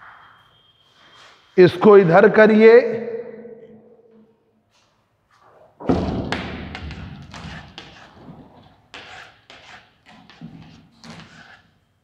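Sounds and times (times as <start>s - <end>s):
thud on a whiteboard: 5.8s - 8.0s.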